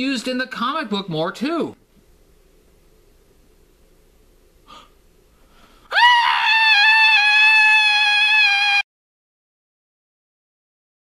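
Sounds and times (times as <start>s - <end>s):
intake of breath: 4.6s - 5.9s
man screaming: 5.9s - 8.8s.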